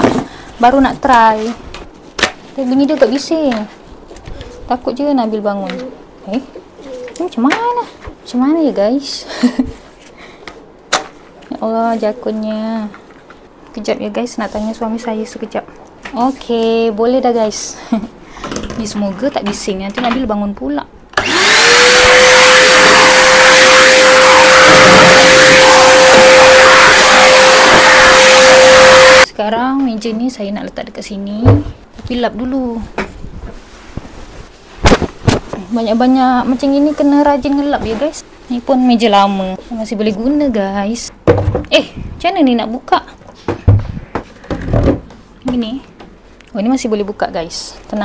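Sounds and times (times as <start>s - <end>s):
vacuum cleaner motor running: 21.2s - 29.3s
vacuum wand pushed across rug: 21.3s - 29.2s
thumps and knocks of wooden table: 41.2s - 41.7s, 43.5s - 45.6s.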